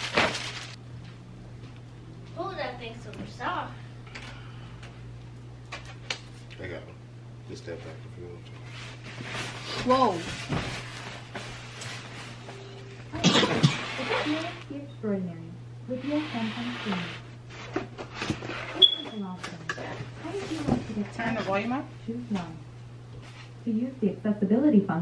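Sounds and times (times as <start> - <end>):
low steady hum: 0.0 - 25.0
rustling noise: 8.6 - 12.9.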